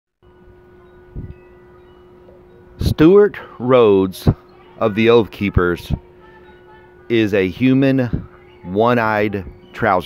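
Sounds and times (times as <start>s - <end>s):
faint sustained ringing tones: 0.2s - 10.0s.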